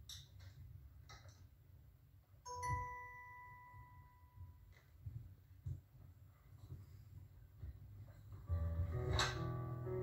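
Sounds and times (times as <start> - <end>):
bell-like chime: 2.5 - 4.6.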